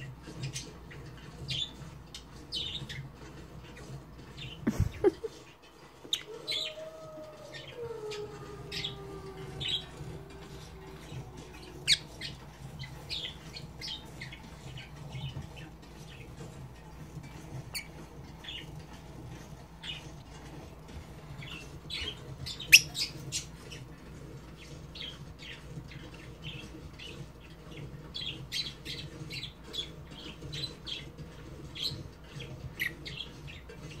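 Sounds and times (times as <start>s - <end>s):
lovebird chirping: 7.5s - 15.3s, 21.4s - 23.5s.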